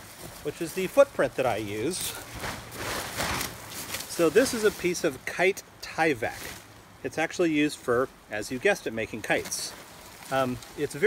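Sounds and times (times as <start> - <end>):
plastic sheet rustling and crinkling: 0.0 - 5.3, 9.2 - 11.0.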